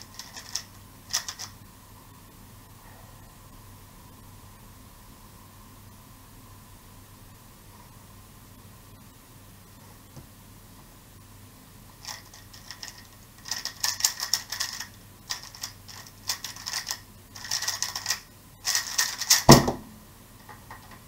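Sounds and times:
puzzle cube turns clicking: 0.0s - 1.6s, 12.0s - 19.5s.

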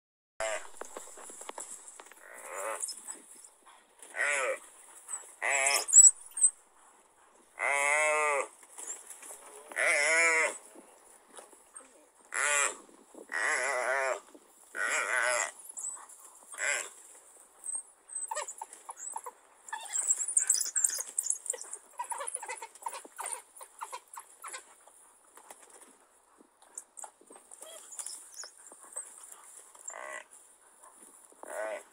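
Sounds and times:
animal bleating in distress: 0.4s - 0.8s, 2.2s - 2.9s, 4.1s - 4.6s, 5.4s - 6.0s, 7.6s - 8.5s, 9.7s - 10.6s, 12.3s - 15.6s, 16.5s - 17.0s, 29.9s - 30.3s, 31.4s - 31.9s.

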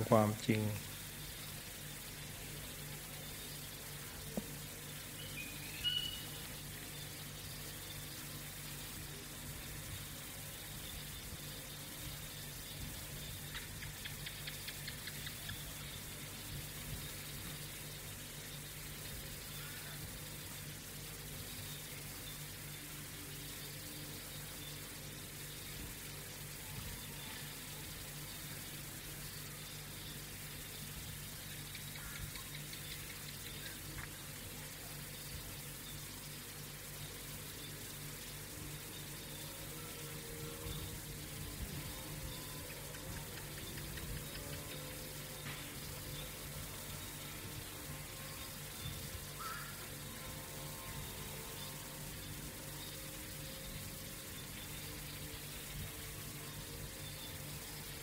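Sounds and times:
faint hiss: 0.0s - 58.0s
faint rising chirp: 4.8s - 8.2s.

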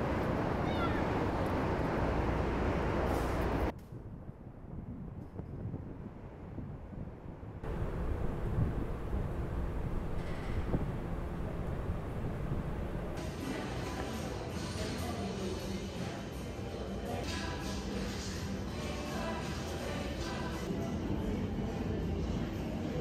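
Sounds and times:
traffic: 0.0s - 3.9s, 6.1s - 20.7s.

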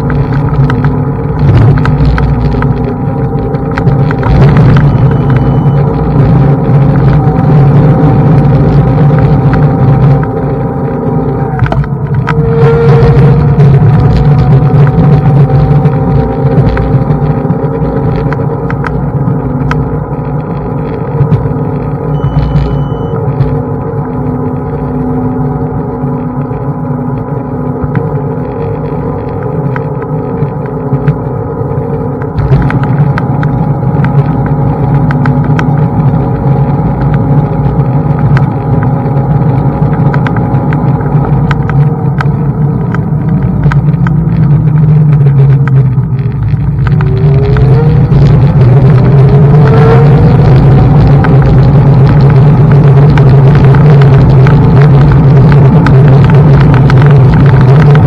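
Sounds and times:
electric motor whine: 0.0s - 42.7s, 46.4s - 58.0s
tyres and frame rumbling and rattling: 0.0s - 58.0s.

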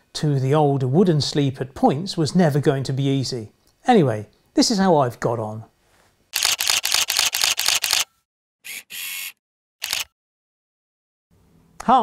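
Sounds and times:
camera shutter clicking: 6.4s - 8.1s, 8.7s - 10.2s.

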